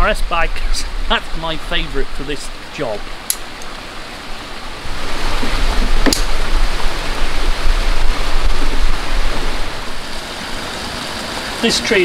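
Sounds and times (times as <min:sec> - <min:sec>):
wind gusting on microphone: 0:00.0 - 0:11.0.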